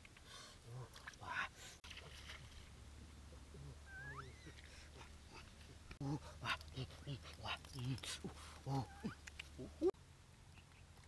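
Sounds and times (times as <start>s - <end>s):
faint rising animal call: 3.5s - 5.5s.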